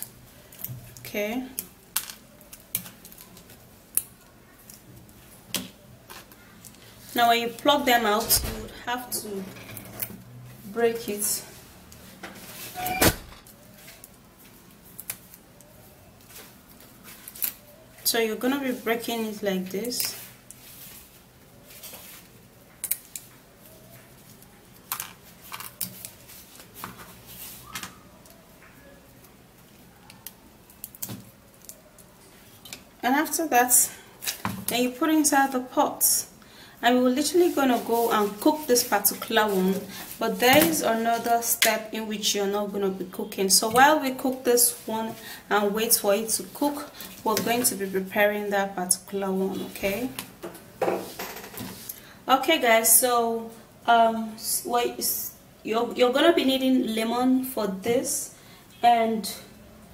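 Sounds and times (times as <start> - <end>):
dried pods snapping: 22.8 - 23.3
faint handling rustle: 37.2 - 41.3.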